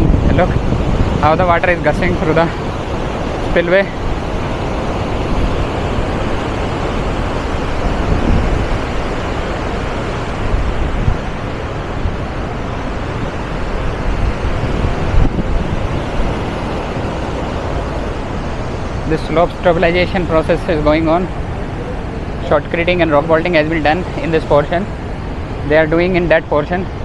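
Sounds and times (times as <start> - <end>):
water roaring through spillway: 0.0 - 27.0
wind buffeting microphone: 0.0 - 27.0.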